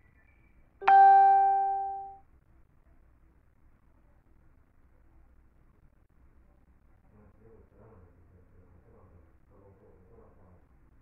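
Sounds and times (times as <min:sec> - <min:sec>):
bell-like chime: 0:00.8 - 0:02.1.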